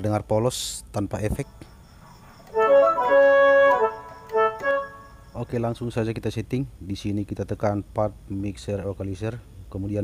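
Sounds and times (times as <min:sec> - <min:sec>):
keyboard woodwind phrase: 0:02.5 - 0:05.4.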